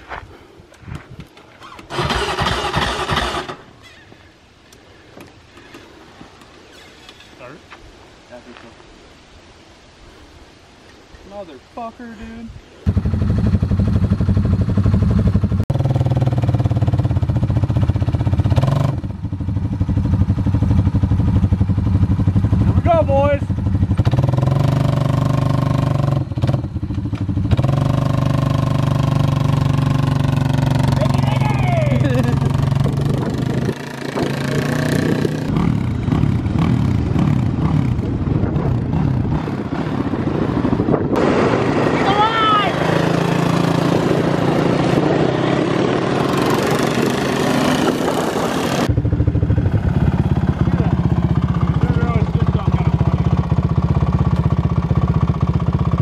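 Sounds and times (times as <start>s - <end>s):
atv engine running and revving: 12.8s - 56.0s.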